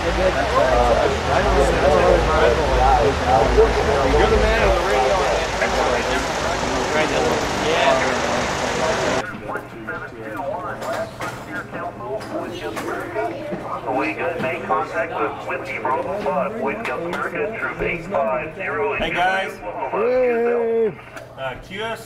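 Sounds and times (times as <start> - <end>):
people talking: 0.0 - 22.0.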